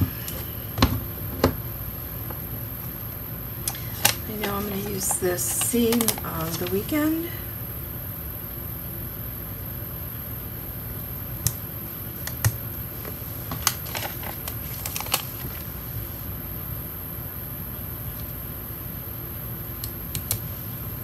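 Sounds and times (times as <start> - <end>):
faint steady background noise: 0.0 - 21.0.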